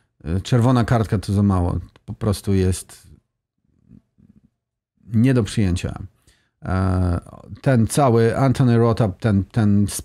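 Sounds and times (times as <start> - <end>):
faint breath: 6.2 - 6.6.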